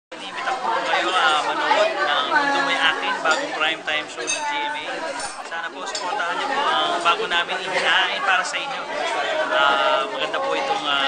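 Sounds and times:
chatter of people: 0:00.1 - 0:11.0.

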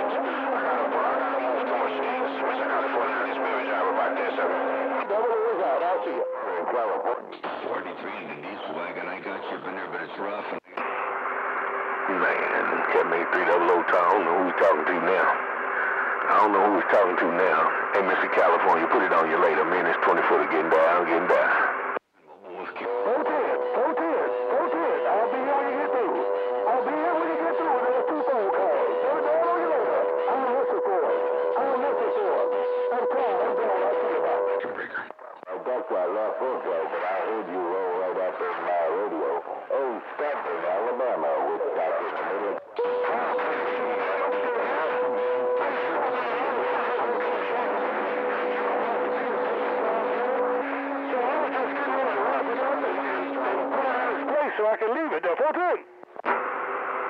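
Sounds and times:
garbled radio voices: 0:00.0 - 0:56.6.

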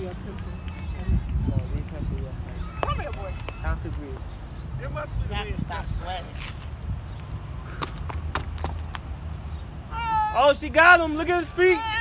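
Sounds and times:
wind rumble on microphone: 0:00.0 - 0:07.8.

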